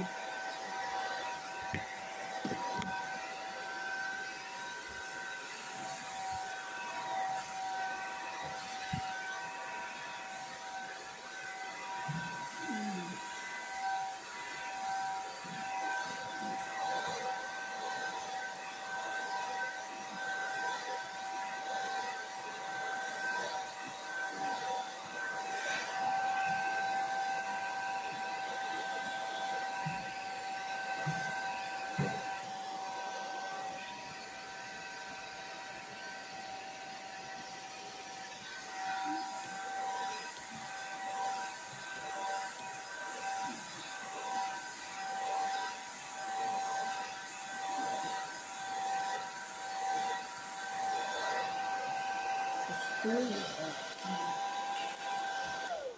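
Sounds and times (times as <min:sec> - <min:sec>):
hair dryer running: 0:00.0 - 0:55.9.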